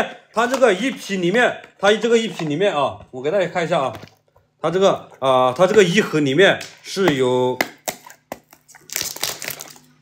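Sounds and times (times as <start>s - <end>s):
packaging crackling and crinkling: 7.9s - 10.0s.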